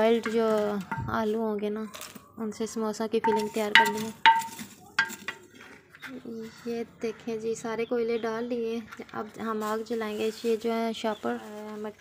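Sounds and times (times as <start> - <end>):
charcoal clinking on metal scoop: 0.0 - 2.2, 3.2 - 5.5
charcoal rattling: 0.0 - 2.3, 3.2 - 5.7, 8.9 - 12.0.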